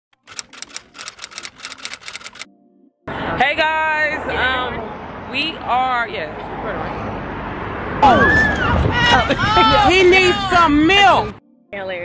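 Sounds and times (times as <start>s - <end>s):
typewriter keys clacking: 0.2s - 2.5s.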